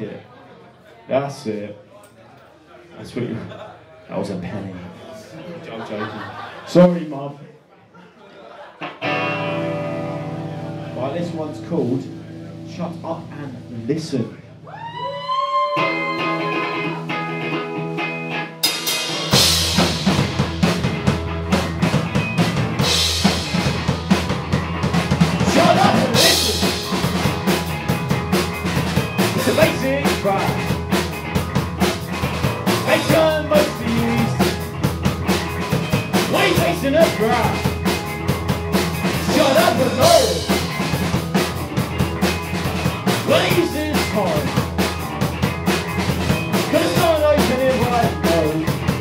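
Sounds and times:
electric guitar: 0:08.8 - 0:13.8, 0:14.5 - 0:49.0
drum kit: 0:08.8 - 0:49.0
bass guitar: 0:08.9 - 0:49.0.

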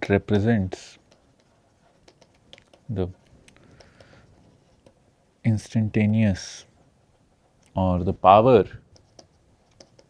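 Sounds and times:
person speaking: 0:00.0 - 0:06.8, 0:07.6 - 0:09.2
stylus tapping on tablet screen: 0:01.0 - 0:02.9, 0:03.5 - 0:04.2, 0:08.9 - 0:10.0.

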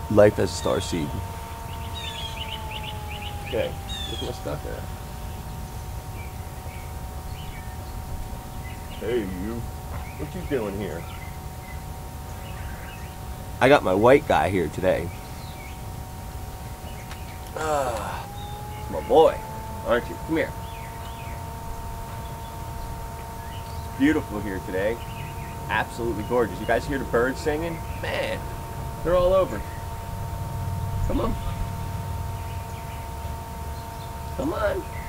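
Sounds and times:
low rumble: 0:00.0 - 0:35.0
songbirds chirping: 0:00.0 - 0:35.0
thin steady tone: 0:00.0 - 0:35.0
falling whistled bird note: 0:00.4 - 0:08.0, 0:18.0 - 0:29.9.

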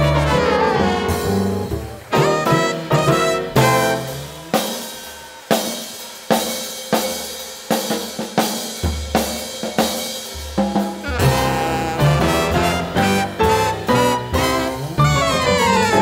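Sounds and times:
upright bass: 0:00.0 - 0:04.5, 0:11.0 - 0:16.0
horns: 0:00.0 - 0:06.3, 0:10.3 - 0:16.0
jazz drum kit: 0:00.0 - 0:16.0
piano: 0:00.0 - 0:16.0.

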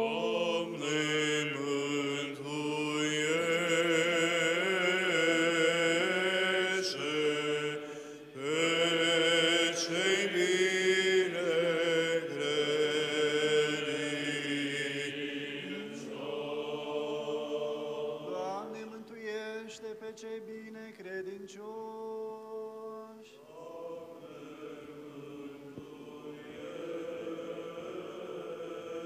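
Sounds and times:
low held vocal drone: 0:00.0 - 0:19.1.

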